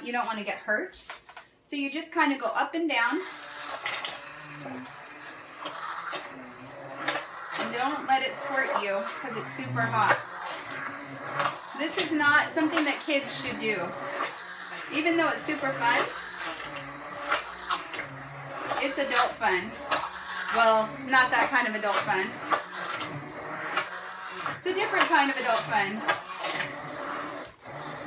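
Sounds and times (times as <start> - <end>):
immersion blender motor hum: 2.9 - 28.0.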